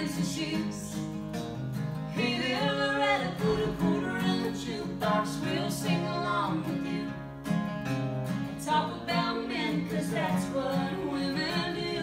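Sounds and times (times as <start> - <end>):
person singing: 0.0 - 1.0, 2.2 - 7.2, 8.7 - 12.0
acoustic guitars strumming: 0.0 - 12.0.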